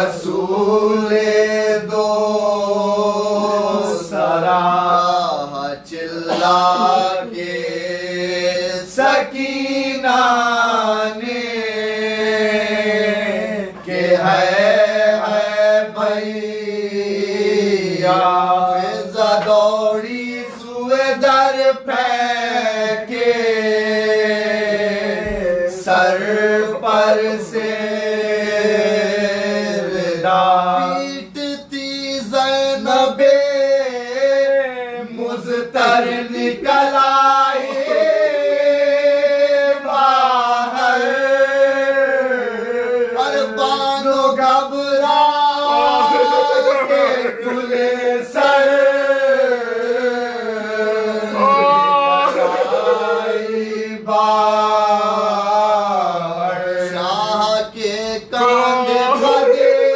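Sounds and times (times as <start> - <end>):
men chanting an elegy: 0.0 - 59.9.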